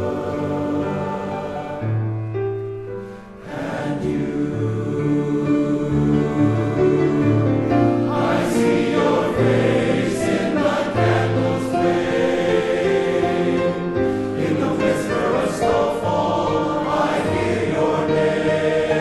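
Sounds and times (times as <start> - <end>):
men's chorus singing in harmony: 0.0 - 2.0, 3.4 - 19.0.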